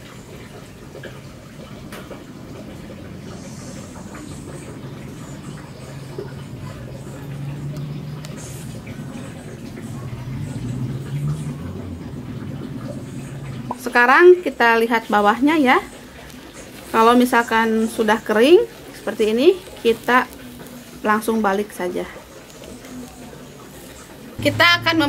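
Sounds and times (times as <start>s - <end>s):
gas burner rumble: 0.0s - 25.0s.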